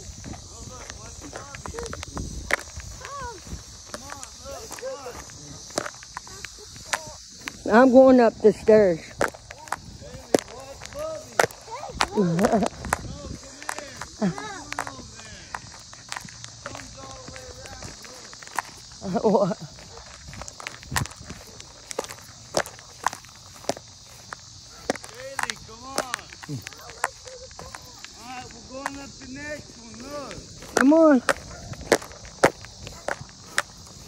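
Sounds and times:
faint voices: 0.0s - 34.0s
footstep thumps: 0.0s - 34.0s
insects hissing: 0.0s - 34.0s.

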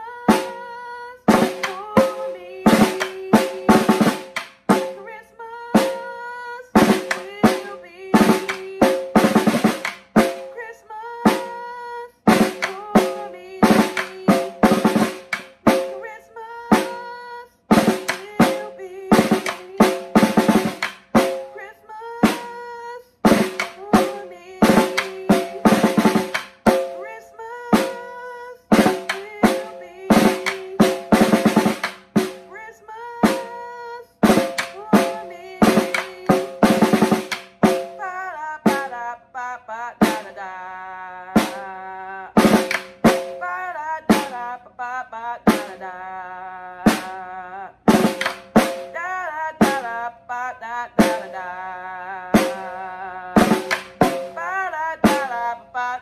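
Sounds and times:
snare drum played with sticks: 0.3s - 0.6s, 1.3s - 5.1s, 5.7s - 10.6s, 11.2s - 11.6s, 12.3s - 16.1s, 16.7s - 17.1s, 17.7s - 21.6s, 22.2s - 22.6s, 23.2s - 32.6s, 33.2s - 33.6s, 34.2s - 38.0s, 38.7s - 38.9s, 40.0s - 40.4s, 41.4s - 41.6s, 42.4s - 43.5s, 44.1s - 44.5s, 45.5s - 45.8s, 46.9s - 47.2s, 47.9s - 49.9s, 51.0s - 51.4s, 52.4s - 52.8s, 53.4s - 55.5s.

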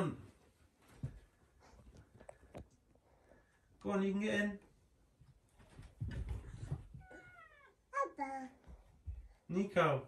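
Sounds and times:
cat meowing: 7.0s - 7.8s.

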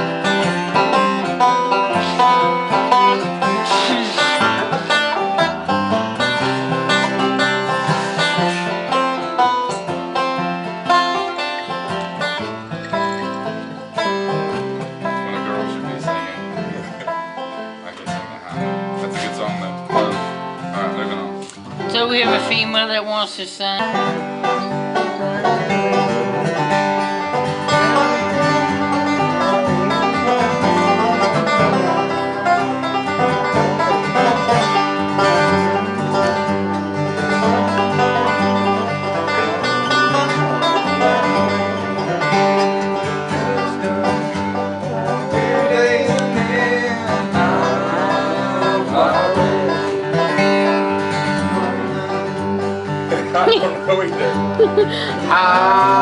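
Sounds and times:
acoustic guitar: 0.0s - 56.0s
banjo: 0.0s - 56.0s.

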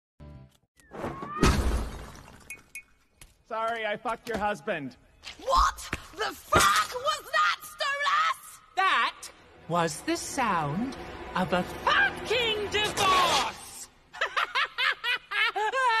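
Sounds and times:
loud shattering crash: 1.4s - 2.5s
cartoon male voice laughing: 14.2s - 16.0s.

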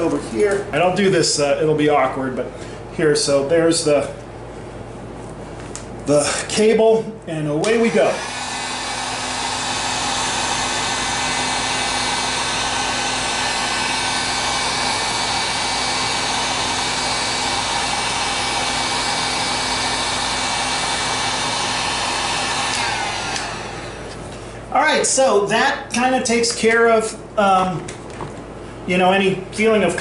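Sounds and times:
heat gun blowing whir: 7.6s - 24.5s.

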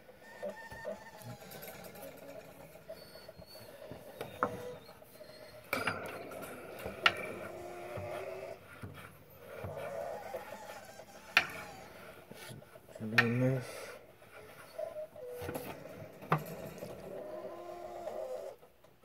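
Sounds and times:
spring creaking and squeaking: 0.0s - 19.0s.

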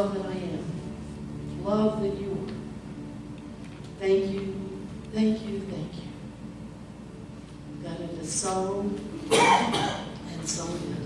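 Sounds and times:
person coughing loudly: 9.3s - 10.2s.

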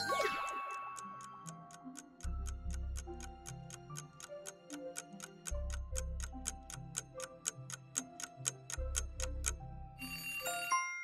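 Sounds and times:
countdown music with ticking beat: 0.0s - 10.9s.

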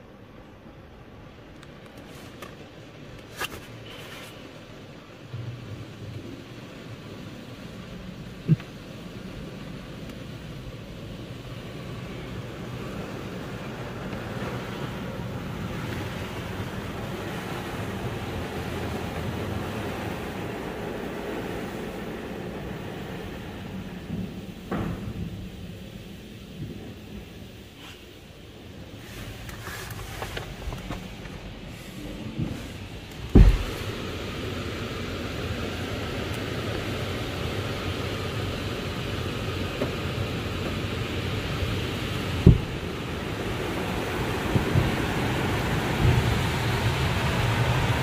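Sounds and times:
car wash machinery rumbling: 0.0s - 48.0s
sharp knocks: 33.3s - 33.8s, 42.4s - 42.8s.

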